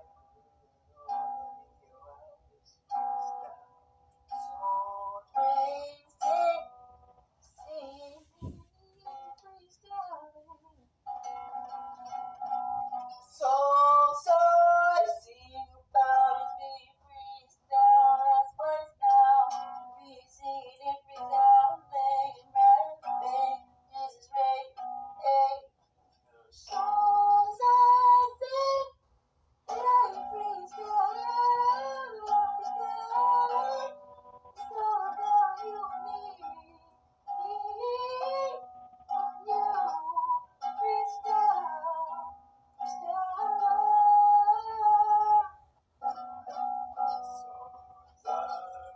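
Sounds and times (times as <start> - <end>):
man singing in a high voice: 4.6 - 6.8, 13.2 - 25.7, 26.4 - 29.0, 29.7 - 36.8.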